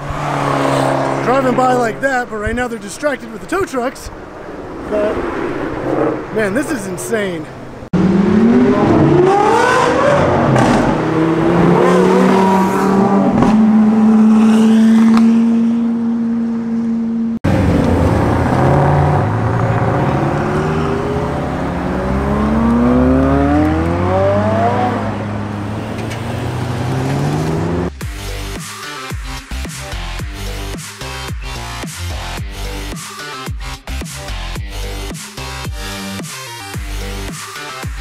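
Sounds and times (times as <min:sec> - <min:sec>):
car accelerating hard: 0:00.0 - 0:02.0, 0:07.9 - 0:27.9
supercar engine revving: 0:07.9 - 0:28.0
electronic music: 0:27.7 - 0:38.0.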